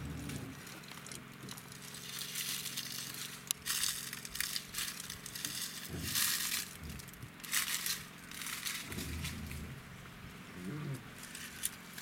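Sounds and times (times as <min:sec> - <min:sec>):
animal chewing grass: 0:00.0 - 0:12.0
low steady hum: 0:00.0 - 0:12.0.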